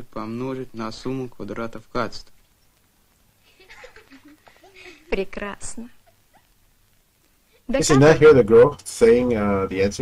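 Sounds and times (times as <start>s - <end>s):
children giggling quietly: 3.4s - 6.6s.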